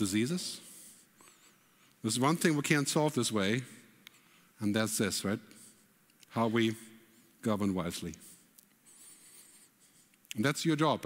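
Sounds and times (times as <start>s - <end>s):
faint high hiss: 0.0s - 11.0s
man talking over amplification: 2.0s - 3.8s, 6.3s - 8.3s, 10.4s - 11.0s.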